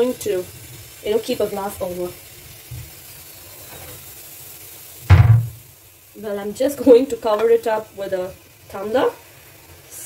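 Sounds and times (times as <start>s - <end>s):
dull knock: 5.1s - 5.6s.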